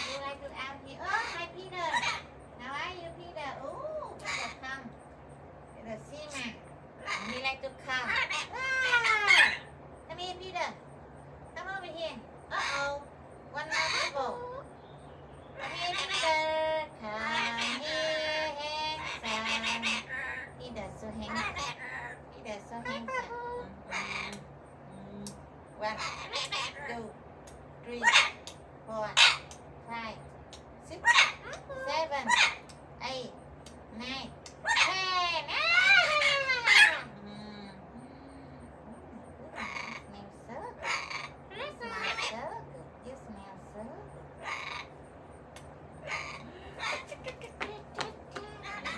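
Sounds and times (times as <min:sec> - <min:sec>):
parrot calling: 0:00.0 - 0:05.1, 0:06.1 - 0:27.2, 0:27.8 - 0:48.9.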